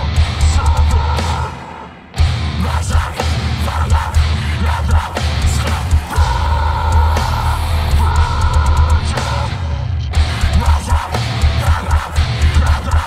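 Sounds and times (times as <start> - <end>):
metalcore band playing loud: 0.0 - 13.0.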